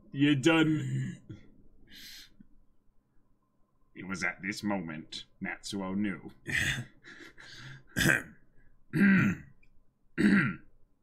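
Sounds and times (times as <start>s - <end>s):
man clearing his throat: 7.9s - 9.5s, 10.2s - 10.7s.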